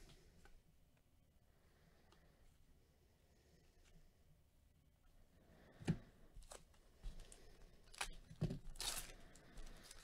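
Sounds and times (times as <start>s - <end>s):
plastic wrapper crinkling: 7.8s - 10.0s
plastic wrapper ripping: 7.9s - 10.0s.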